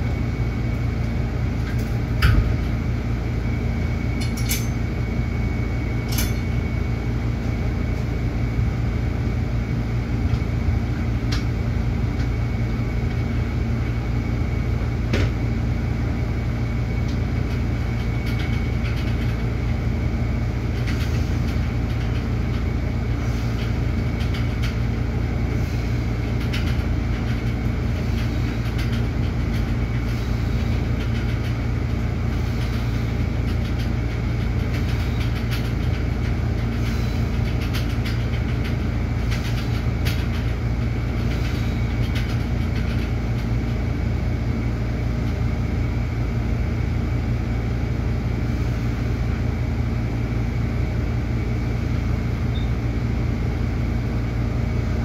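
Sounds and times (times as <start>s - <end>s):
low machine hum: 0.0s - 55.0s.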